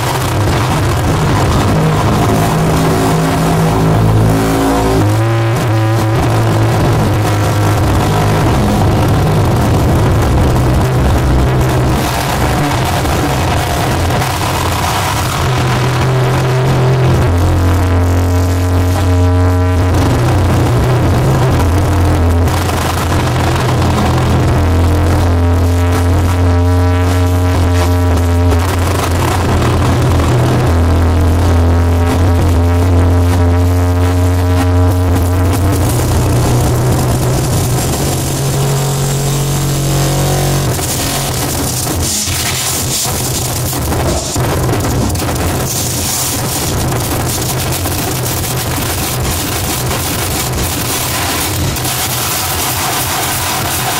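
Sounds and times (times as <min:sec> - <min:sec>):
distorted noise wall: 0:00.0 - 0:53.9
feedback tones: 0:00.0 - 0:53.9
heavy low drone: 0:00.0 - 0:53.9.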